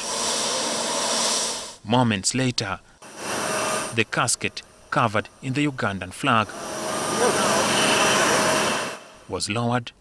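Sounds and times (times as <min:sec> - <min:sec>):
jet engines whining: 0:03.0 - 0:09.3
high steady tones: 0:03.0 - 0:09.4.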